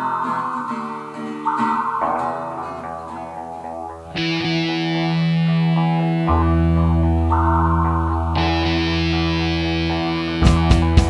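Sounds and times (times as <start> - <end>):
distorted electric guitar chords: 0.0 - 11.0
bass guitar: 2.8 - 11.0.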